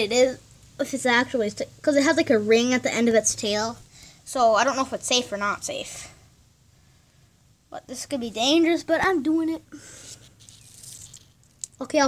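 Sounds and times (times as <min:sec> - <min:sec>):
faint rustling: 0:09.8 - 0:11.8.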